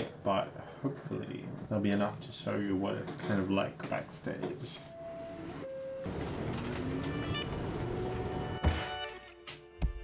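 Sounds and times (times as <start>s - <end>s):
train rumble: 4.3s - 8.6s
music: 7.0s - 10.0s.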